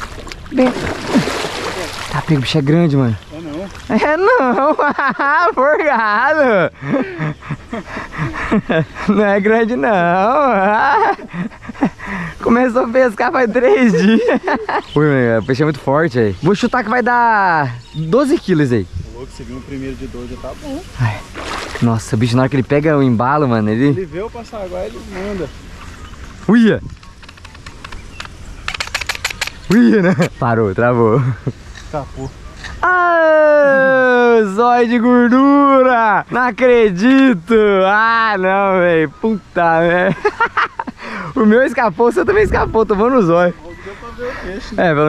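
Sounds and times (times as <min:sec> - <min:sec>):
man laughing: 0:03.9 - 0:12.5, 0:13.3 - 0:15.0, 0:29.7 - 0:30.4, 0:31.1 - 0:31.6, 0:39.2 - 0:41.6
low wind rumble: 0:39.8 - 0:45.0.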